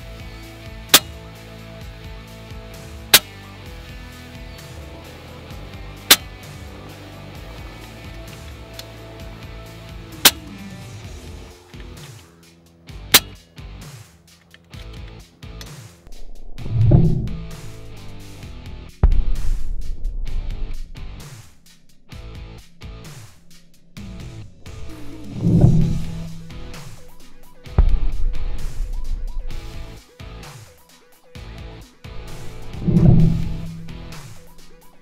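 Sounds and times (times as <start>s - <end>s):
guitar music: 0.0s - 13.9s, 14.6s - 30.5s, 31.3s - 35.0s
air rifle shots: 0.9s - 1.2s, 3.1s - 3.4s, 6.1s - 6.5s, 10.1s - 10.7s, 13.1s - 13.4s, 16.8s - 21.6s, 23.0s - 30.0s.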